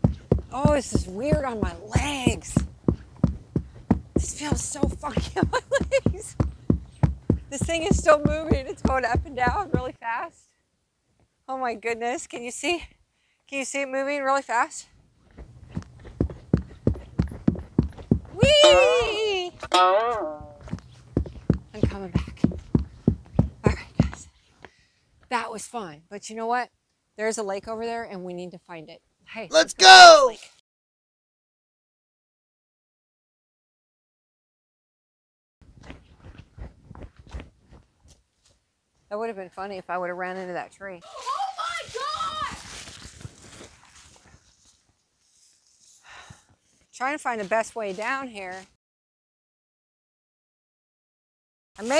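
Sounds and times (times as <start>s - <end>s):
footsteps on wooden planks: 0.0s - 9.9s, 15.3s - 18.8s, 20.2s - 24.3s, 35.7s - 38.6s, 41.0s - 44.7s
woman whooping: 18.4s - 19.5s
footsteps in dry leaves: 41.0s - 46.0s.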